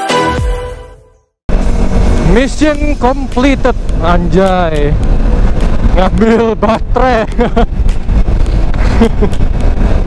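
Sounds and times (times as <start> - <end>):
motorcycle engine running: 1.5 - 10.0
wind noise on microphone: 1.5 - 10.0
person laughing: 7.1 - 7.8, 8.8 - 9.4.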